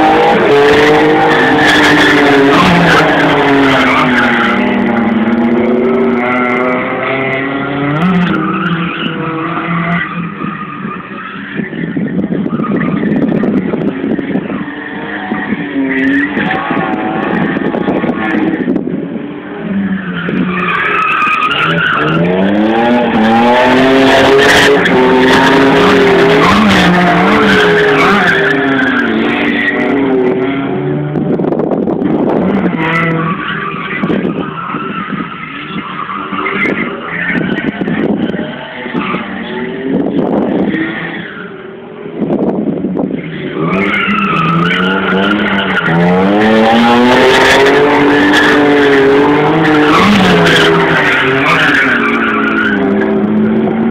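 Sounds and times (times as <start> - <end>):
car engines revving hard: 0.0 - 53.9.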